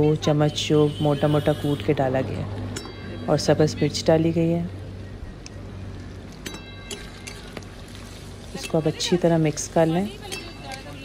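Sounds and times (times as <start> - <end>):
spatula clinking on metal pan: 10.2 - 10.9.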